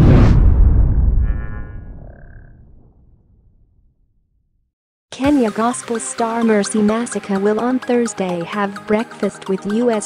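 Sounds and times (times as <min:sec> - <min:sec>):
deep boom: 0:00.0 - 0:04.6.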